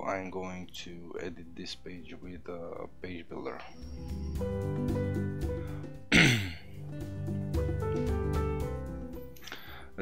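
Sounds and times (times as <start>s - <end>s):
background music: 0.0s - 10.0s
man clearing his throat: 6.1s - 6.7s.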